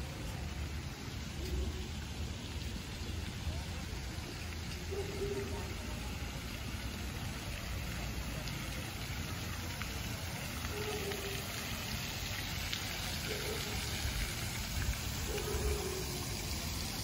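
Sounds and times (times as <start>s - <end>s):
fountain jets splashing water: 0.0s - 17.0s.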